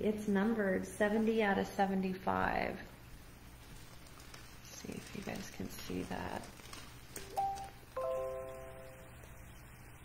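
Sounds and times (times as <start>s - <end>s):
ringing chord: 7.4s - 9.4s.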